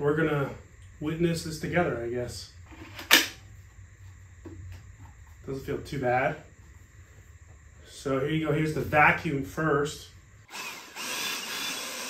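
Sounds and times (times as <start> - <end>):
leaf vacuum motor whining: 10.5 - 12.0.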